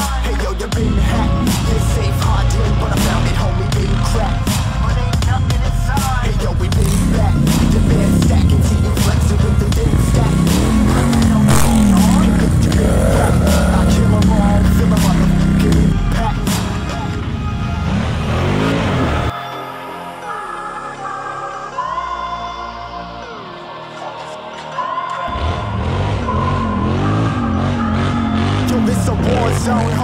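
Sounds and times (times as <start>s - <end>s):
quad bike engine revving: 0.8s - 19.3s, 25.3s - 30.0s.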